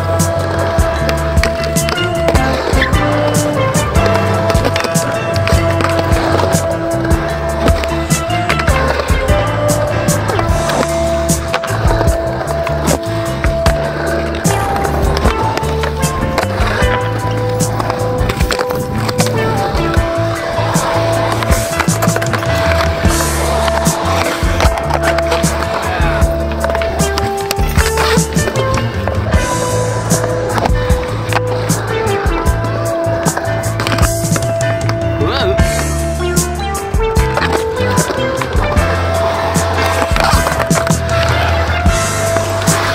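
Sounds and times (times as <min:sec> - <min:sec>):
background music: 0:00.0 - 0:42.9
skateboard wheels rolling on concrete: 0:00.0 - 0:42.9
skateboards clacking: 0:00.0 - 0:42.9.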